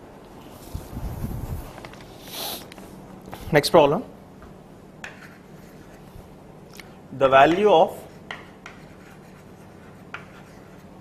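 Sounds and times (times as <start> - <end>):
faint steady hum: 0.0 - 11.0
chalk tapping and scratching: 5.0 - 6.1, 7.5 - 11.0.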